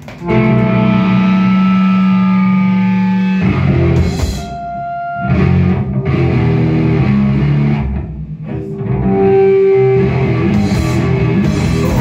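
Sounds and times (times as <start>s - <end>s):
distorted electric guitar chord: 0.2s - 12.0s.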